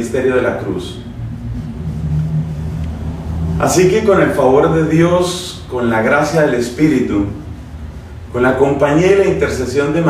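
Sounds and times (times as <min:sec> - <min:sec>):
hum: 0:00.0 - 0:08.4
low steady rumble: 0:00.0 - 0:10.0.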